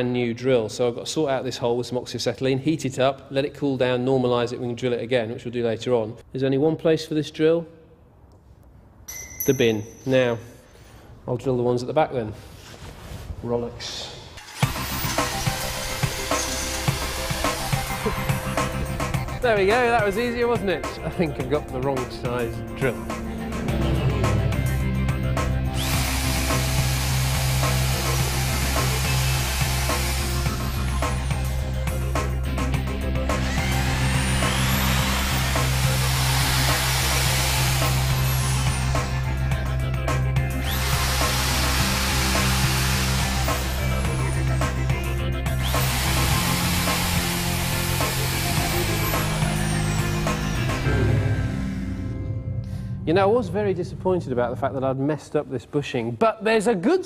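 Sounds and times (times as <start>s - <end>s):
electric drill boring steel: 14.4s - 19.4s, 25.4s - 51.6s
background music: 14.4s - 55.7s
man laughing: 17.9s - 18.9s.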